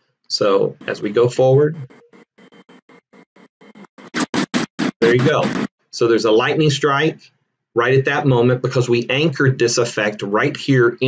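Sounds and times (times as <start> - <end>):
stuttering choppy audio bursts: 0.5 - 5.8.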